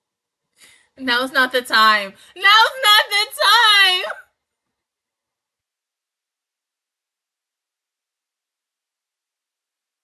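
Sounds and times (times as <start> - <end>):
woman shouting: 2.4 - 4.2.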